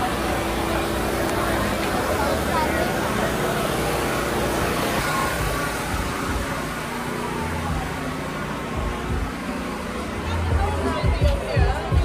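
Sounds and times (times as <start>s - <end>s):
distant music: 0.0s - 12.0s
faint distant voices: 0.0s - 12.0s
low rumbles: 0.0s - 12.0s
street noise wash: 0.0s - 12.0s.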